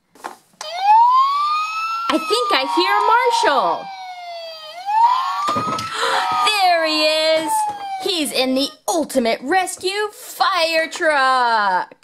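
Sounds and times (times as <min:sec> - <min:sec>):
toy electronic siren wailing: 0:00.6 - 0:08.4.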